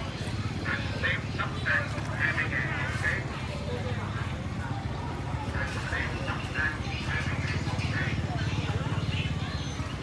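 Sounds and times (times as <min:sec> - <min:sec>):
indistinct market chatter: 0:00.0 - 0:10.0
small motorbike engine rumbling: 0:00.0 - 0:10.0.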